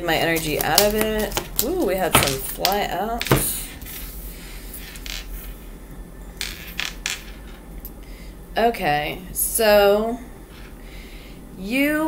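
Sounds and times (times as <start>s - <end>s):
cards tapping on tabletop: 3.2s - 3.5s.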